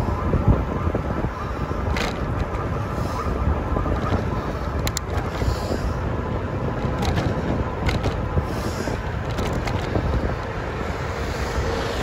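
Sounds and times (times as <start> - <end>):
bike road noise: 0.0 - 12.0
wind buffeting microphone: 0.0 - 12.0
sharp clicks or rattles: 6.8 - 8.3, 9.1 - 10.2.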